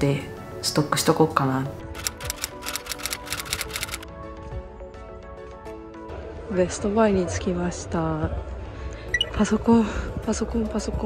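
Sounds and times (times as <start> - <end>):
background music: 0.0 - 11.0
typewriter keystroke clicks: 2.0 - 4.0.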